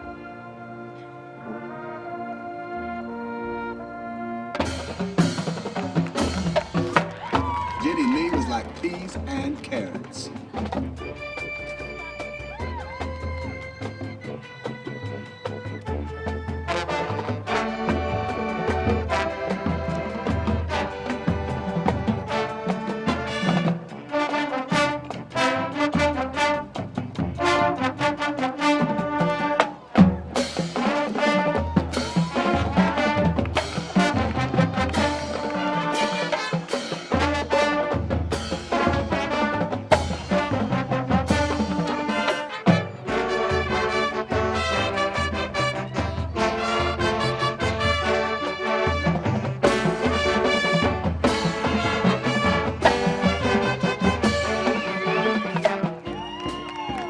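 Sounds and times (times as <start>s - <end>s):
trombones and trumpets: 0.0s - 57.0s.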